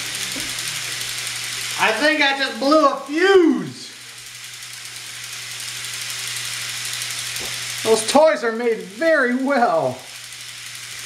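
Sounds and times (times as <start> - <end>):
toy trains whirring on plastic track: 0.0 - 11.0.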